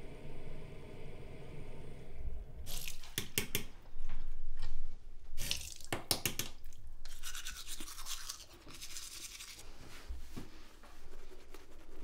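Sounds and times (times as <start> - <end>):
toothbrush brushing: 7.0 - 9.6.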